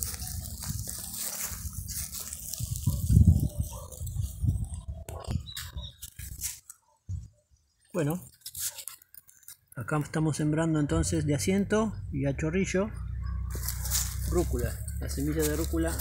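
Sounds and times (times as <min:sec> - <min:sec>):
pole scraping through soil and leaves: 0:00.0 - 0:04.7, 0:05.6 - 0:06.7, 0:08.2 - 0:09.6, 0:13.5 - 0:16.0.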